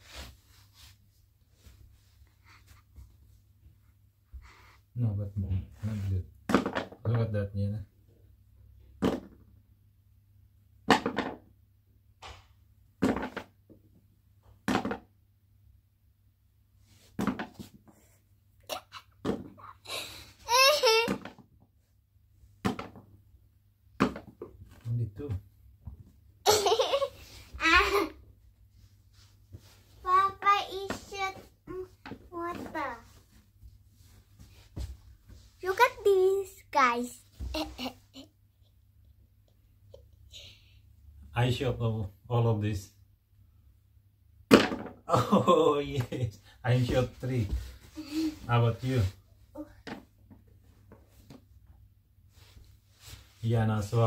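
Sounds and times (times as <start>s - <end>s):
girl laughing: 19.8s - 21.1s, 26.5s - 28.2s.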